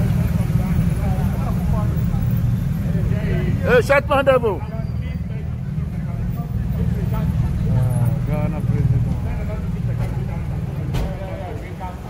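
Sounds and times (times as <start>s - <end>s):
heavy low street rumble: 0.0s - 12.0s.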